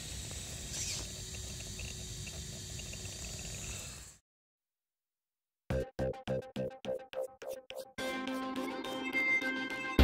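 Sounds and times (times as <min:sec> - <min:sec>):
faint motor whine: 0:00.0 - 0:04.2
rc car pushing through grass: 0:00.7 - 0:01.4.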